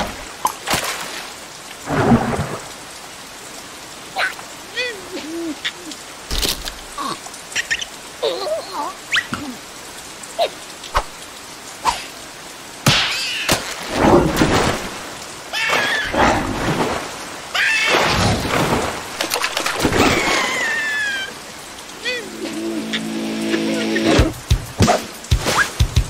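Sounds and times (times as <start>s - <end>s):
steady rain falling: 0.0s - 26.0s.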